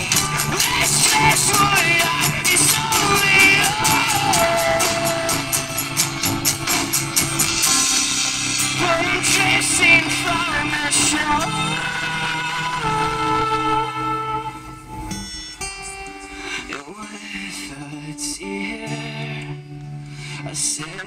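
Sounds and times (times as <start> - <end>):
person singing: 0.0 - 6.8, 7.4 - 14.9, 15.6 - 21.0
sharp percussive hits: 0.0 - 11.4
electric bass: 0.0 - 16.1
strummed acoustic guitar: 0.0 - 21.0.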